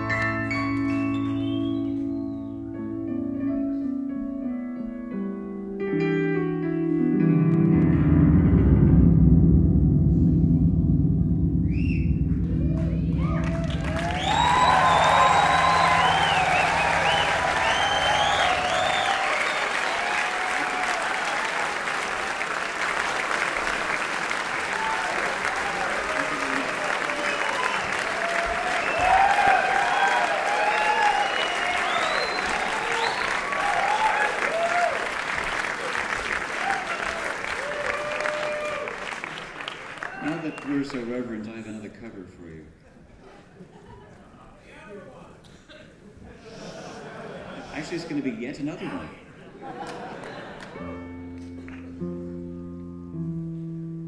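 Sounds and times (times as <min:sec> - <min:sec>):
grand piano low notes ringing: 0:00.0 - 0:19.2, 0:50.8 - 0:54.0
cheering and whistles: 0:00.9 - 0:02.6, 0:13.2 - 0:21.8, 0:24.6 - 0:35.1, 0:36.5 - 0:39.1
audience applause: 0:12.7 - 0:41.2, 0:49.6 - 0:52.0.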